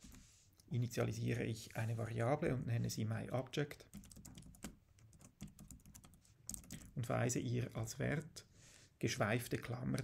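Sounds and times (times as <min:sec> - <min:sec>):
computer keyboard typing: 0:03.9 - 0:07.0.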